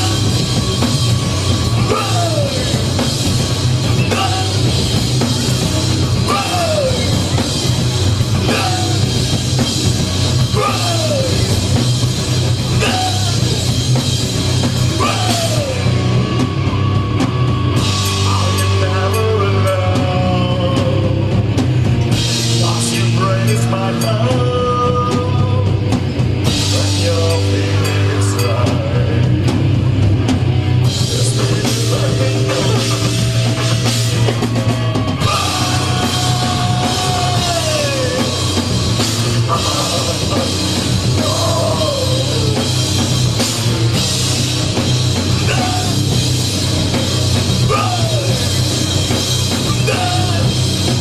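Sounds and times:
rock band playing live: 0:00.0 - 0:51.0.

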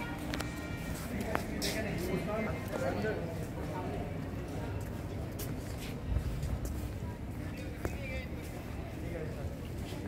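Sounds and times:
distant indistinct voices: 0:00.0 - 0:10.0.

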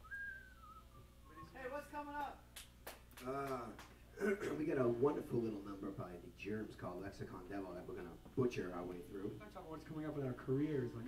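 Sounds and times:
whistled note sliding down: 0:00.0 - 0:01.4.

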